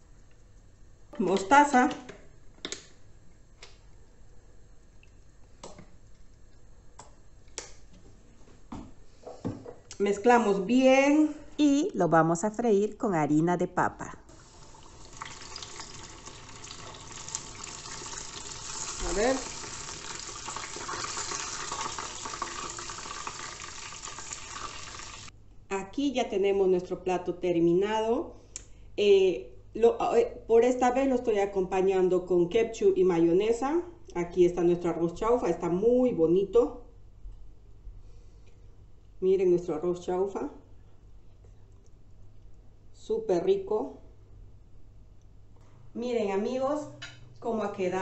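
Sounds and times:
chicken deep-frying in oil: 14.4 - 25.3.

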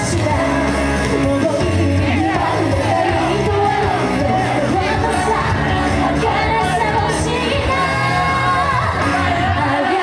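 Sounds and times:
pop backing music: 0.0 - 10.0
woman singing into microphone: 1.2 - 10.0.

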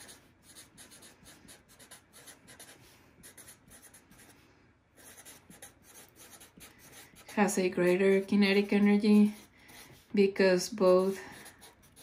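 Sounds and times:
marker writing on paper: 0.0 - 4.3, 5.0 - 10.1, 10.8 - 12.0.

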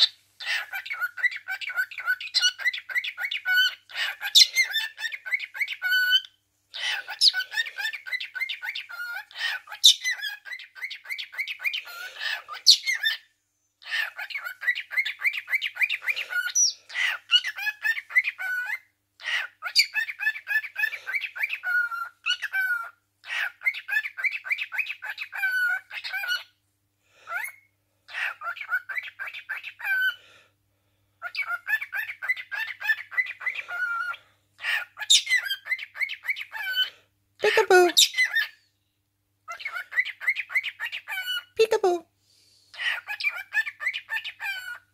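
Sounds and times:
cockatiel chirping and warbling: 0.0 - 13.2, 13.8 - 26.5, 27.3 - 30.2, 31.2 - 38.5, 39.5 - 42.0, 42.7 - 44.8.

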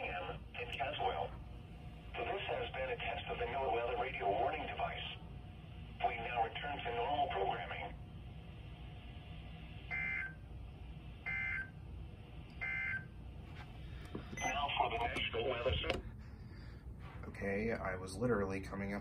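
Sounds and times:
radio broadcast voice: 0.0 - 1.4, 2.1 - 5.2, 5.9 - 8.0, 14.4 - 16.1.

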